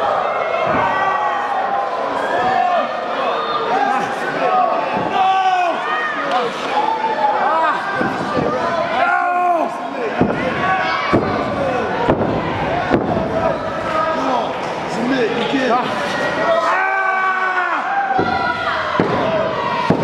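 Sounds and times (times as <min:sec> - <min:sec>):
crowd shouting: 0:00.0 - 0:20.0.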